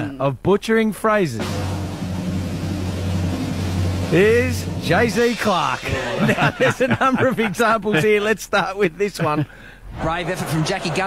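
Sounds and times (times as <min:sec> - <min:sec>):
person talking: 0:00.0 - 0:00.4, 0:04.1 - 0:09.4
low rumbling drone with hiss: 0:01.4 - 0:06.7.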